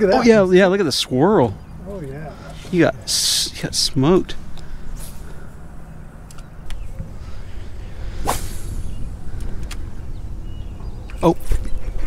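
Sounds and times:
low steady rumble: 0.0s - 12.0s
fishing rod swish: 8.2s - 8.8s.

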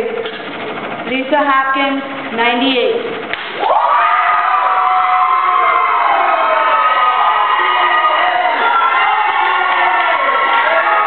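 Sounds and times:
crowd cheering and yelling: 3.5s - 11.0s.

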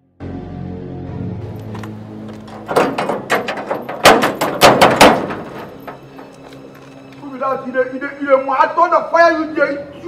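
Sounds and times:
hand knocking on metal gate: 2.6s - 6.3s.

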